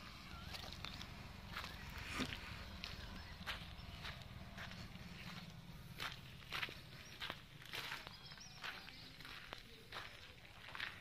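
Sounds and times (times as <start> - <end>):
footsteps on sandy concrete: 0.0 - 11.0.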